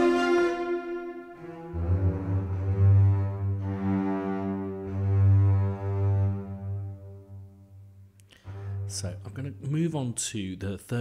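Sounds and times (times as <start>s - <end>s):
low legato strings: 0.0s - 10.2s.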